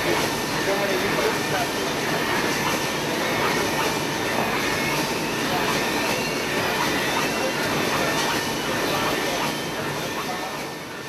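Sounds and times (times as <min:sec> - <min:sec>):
printing machinery roaring: 0:00.0 - 0:11.0.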